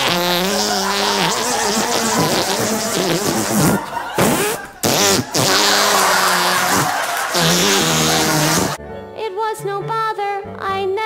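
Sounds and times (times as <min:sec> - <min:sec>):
buzzing fart noises: 0:00.0 - 0:08.8.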